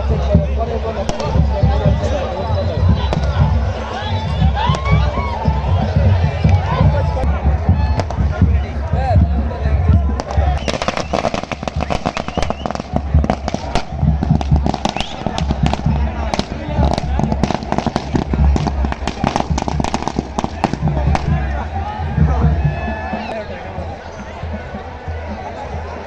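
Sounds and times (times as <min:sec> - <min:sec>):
firecrackers banging: 0:10.1 - 0:21.6.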